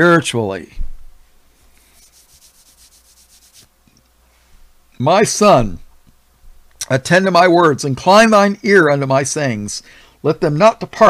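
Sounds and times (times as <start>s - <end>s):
low steady hum: 0.0s - 11.0s
quick rubbing strokes: 1.6s - 3.8s.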